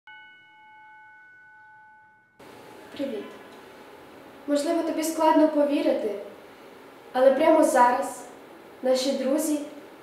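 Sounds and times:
bell-like chime ringing: 0.1 - 2.4.

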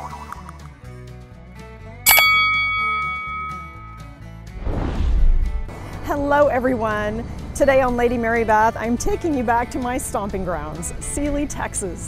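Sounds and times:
bright bell ding: 2.1 - 4.1.

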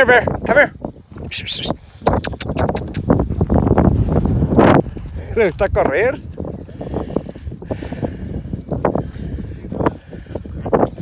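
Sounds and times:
running footsteps on dry grass: 0.2 - 11.0.

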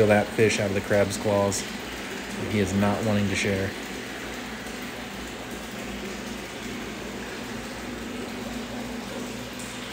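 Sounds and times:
aquarium filter water hiss: 0.0 - 9.9
low steady hum: 0.0 - 9.9.

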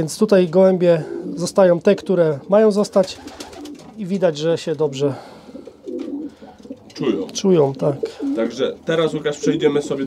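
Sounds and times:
pigeons cooing: 0.9 - 4.0, 5.1 - 10.0.

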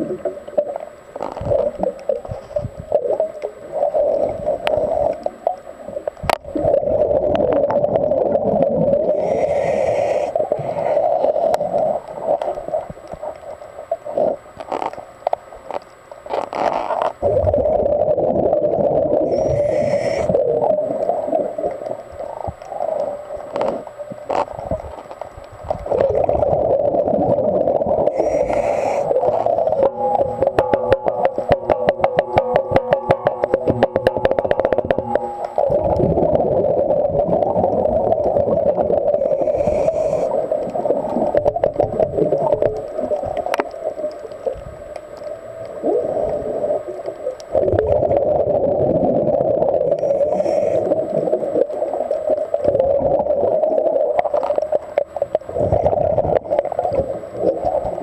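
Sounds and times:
underwater bubbles gurgling: 0.0 - 58.0
rattling rapid bubbling: 25.6 - 40.2, 52.5 - 58.0.

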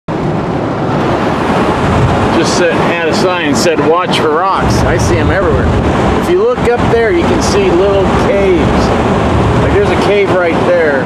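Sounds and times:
road and wind noise in car: 0.1 - 11.0.

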